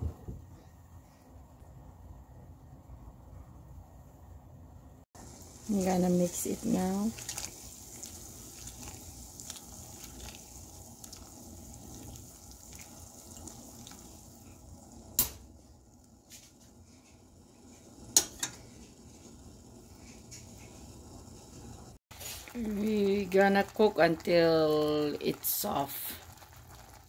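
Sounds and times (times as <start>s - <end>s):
water boiling in a pot: 5.1s - 27.0s.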